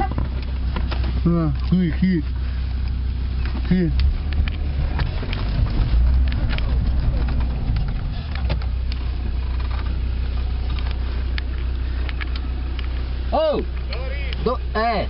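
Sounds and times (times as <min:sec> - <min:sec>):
vehicle engine droning: 0:00.0 - 0:15.0.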